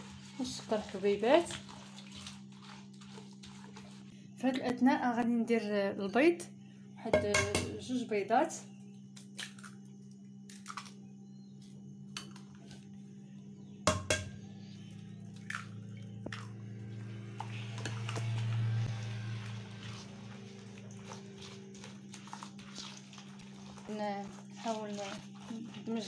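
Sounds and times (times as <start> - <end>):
wet squelching of batter mixing: 0.0 - 4.5, 14.8 - 26.0
steady low hum: 0.0 - 26.0
egg cracking: 10.5 - 11.0.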